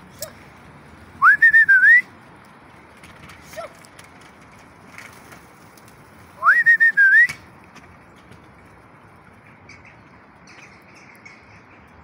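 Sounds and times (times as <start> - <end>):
loud whistled call: 1.2 - 2.1, 6.4 - 7.4.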